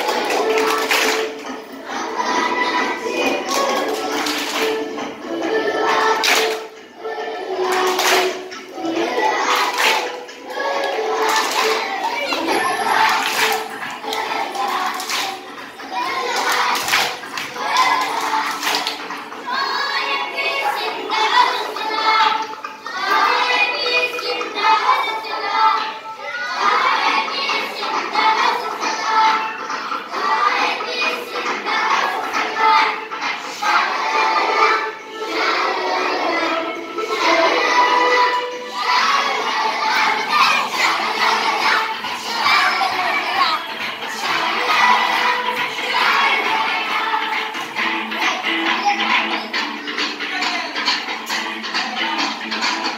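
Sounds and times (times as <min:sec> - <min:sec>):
children chattering and shouting: 0:00.0 - 0:52.9
song playing: 0:00.0 - 0:52.9.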